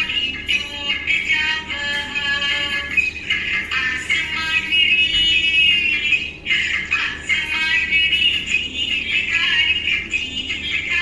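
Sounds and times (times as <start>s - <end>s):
song with high sung melody: 0.0s - 11.0s.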